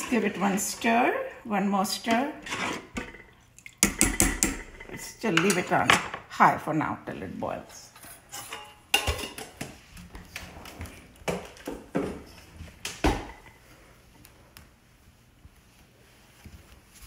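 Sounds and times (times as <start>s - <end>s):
pots and utensils knocking: 2.0s - 6.2s, 8.4s - 9.6s.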